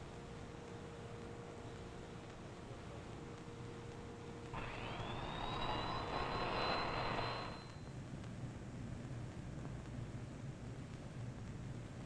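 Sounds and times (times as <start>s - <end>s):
motor whine climbing in pitch: 4.6s - 7.8s.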